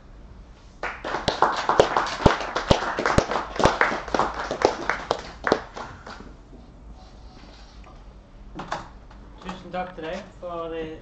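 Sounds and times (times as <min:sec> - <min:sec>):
audience clapping: 0:00.8 - 0:06.4.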